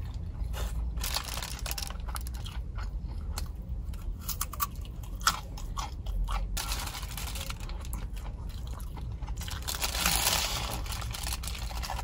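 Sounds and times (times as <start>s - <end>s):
chewing with crunches: 0.0s - 12.0s.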